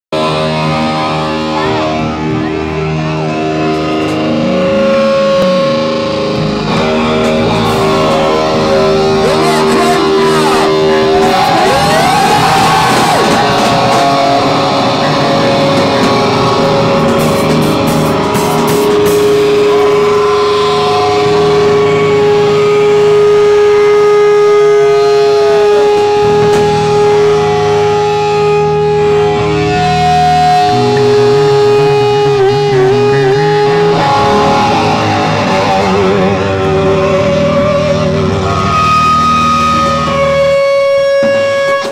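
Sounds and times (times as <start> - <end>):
drums: 0.1 - 41.9
overdriven electric guitar: 0.1 - 41.9.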